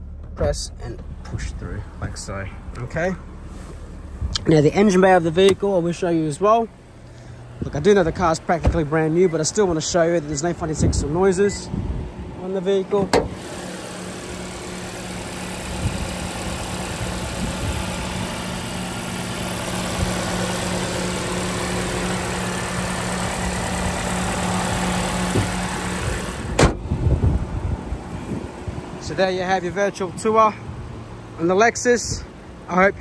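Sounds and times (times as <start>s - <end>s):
car engine idling hum: 0.0s - 33.0s
car bonnet shutting: 7.4s - 9.9s, 12.9s - 14.6s, 24.1s - 27.3s.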